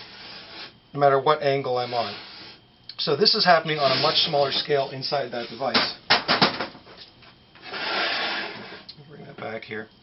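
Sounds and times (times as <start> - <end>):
stand base scraping on tabletop: 3.7 - 5.8.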